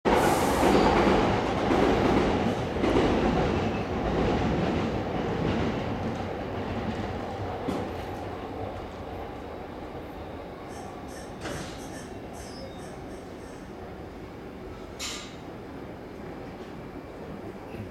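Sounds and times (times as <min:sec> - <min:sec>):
train wheels clattering on rails: 0:00.1 - 0:09.4, 0:10.7 - 0:13.8, 0:14.7 - 0:15.6.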